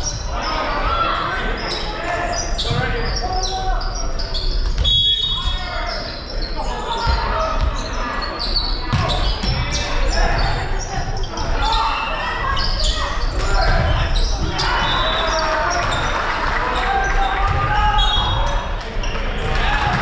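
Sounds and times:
players and spectators chatter: 0.0 - 20.0.

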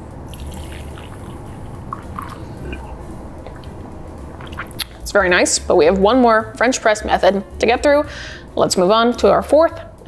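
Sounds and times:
tea pouring into glass mug: 0.3 - 2.4.

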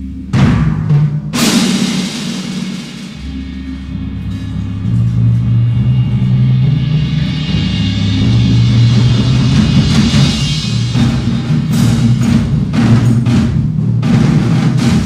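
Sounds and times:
cymbal crash: 0.0 - 15.0
drum ensemble deep notes: 0.0 - 15.0.

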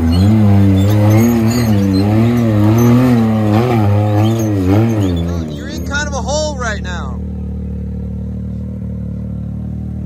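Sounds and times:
engine idling: 1.0 - 10.0.

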